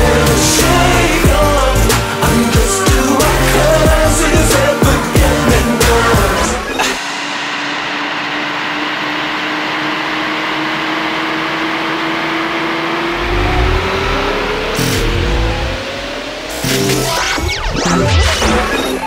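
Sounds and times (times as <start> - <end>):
deep bass: 0.0 - 7.0, 13.1 - 18.6
synth tone gliding upward: 0.0 - 19.0.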